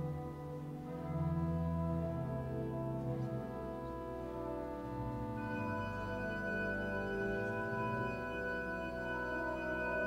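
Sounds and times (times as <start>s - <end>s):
pipe organ playing sustained chords: 0.0s - 10.0s.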